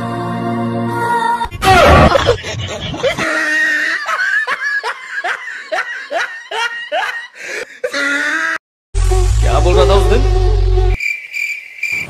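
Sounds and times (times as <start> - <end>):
person laughing: 1.7 - 8.6.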